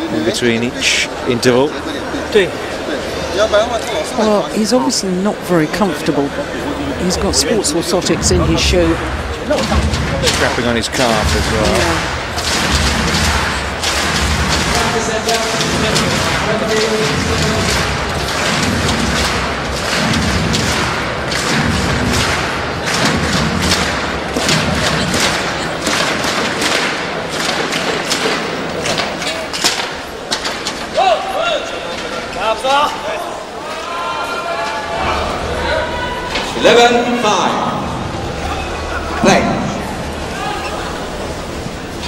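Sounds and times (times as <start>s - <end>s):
crowd din of voices: 0.0s - 42.0s
sharp claps or thumps: 8.2s - 30.7s
people shouting: 30.9s - 36.6s, 38.2s - 41.4s.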